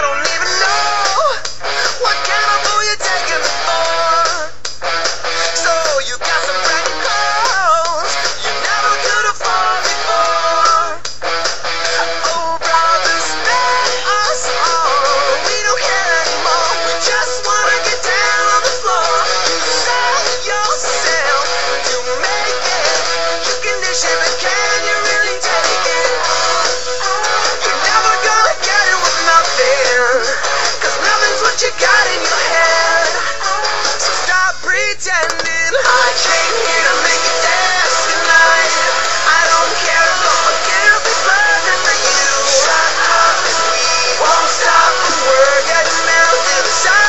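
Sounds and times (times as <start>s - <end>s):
pop-rock song with singing: 0.0s - 47.0s.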